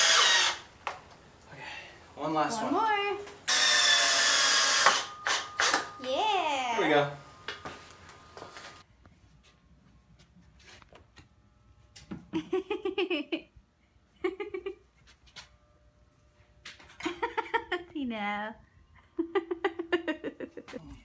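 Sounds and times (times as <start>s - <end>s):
cordless drill driving screw: 0.0s - 0.7s, 3.5s - 5.9s.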